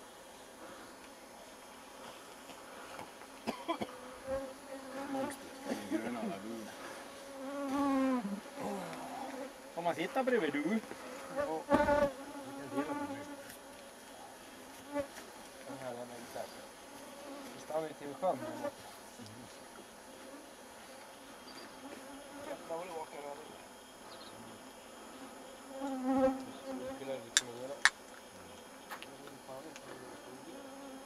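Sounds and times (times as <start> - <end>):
flying insects buzzing: 0.0 - 31.0.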